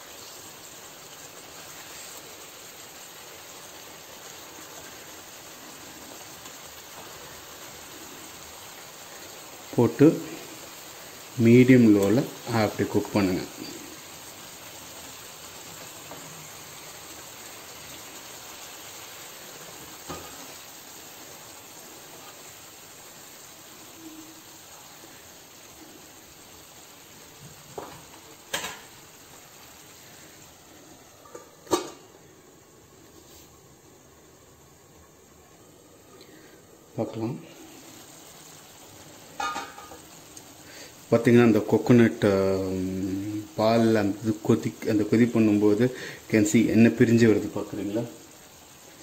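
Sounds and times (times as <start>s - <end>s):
fish sizzling in a pan: 0.0s - 49.0s.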